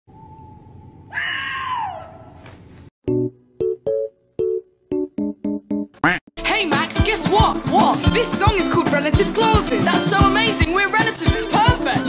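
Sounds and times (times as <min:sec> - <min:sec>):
person screaming: 0:01.1 - 0:02.2.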